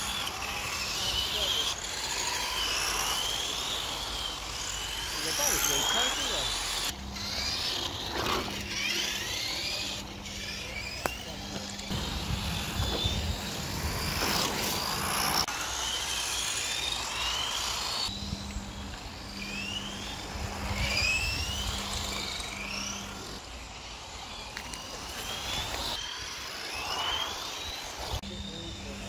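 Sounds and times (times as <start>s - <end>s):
rc car electric motors whining: 0.0s - 29.0s.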